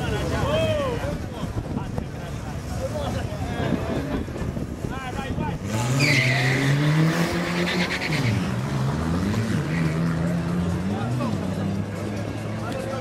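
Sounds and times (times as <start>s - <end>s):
car engines revving hard: 2.0s - 13.0s
tyre squeal: 5.8s - 6.8s.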